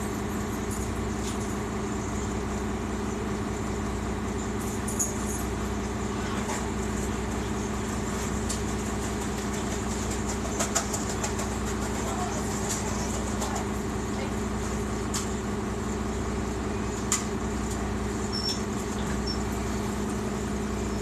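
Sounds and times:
bus engine running: 0.0 - 21.0.

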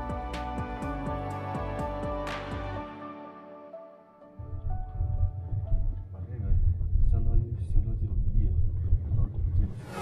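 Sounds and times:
rising whoosh: 9.7 - 10.0.

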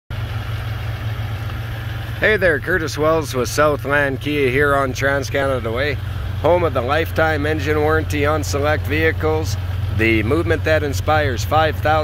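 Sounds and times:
vehicle engine idling: 0.1 - 12.0.

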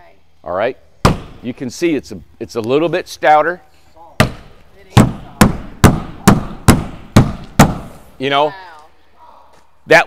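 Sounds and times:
hand striking wall panel: 1.0 - 1.5, 4.2 - 8.0.

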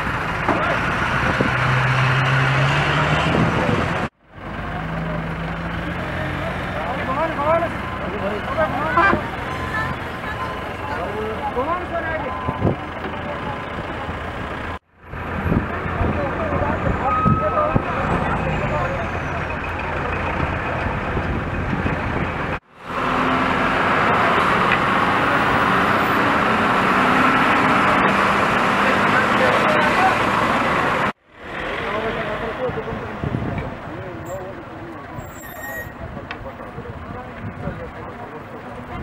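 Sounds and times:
motor vehicle engines: 0.0 - 39.0
people talking: 4.7 - 14.4, 15.5 - 20.5, 27.7 - 30.4, 31.6 - 39.0.

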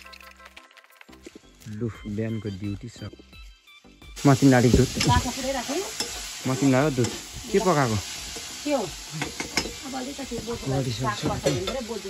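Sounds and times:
food sizzling in a wok: 4.1 - 12.0.

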